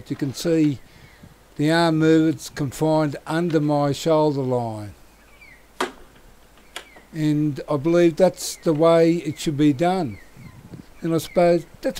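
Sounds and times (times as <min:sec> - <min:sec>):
quiet outdoor background: 0:00.0 - 0:11.9.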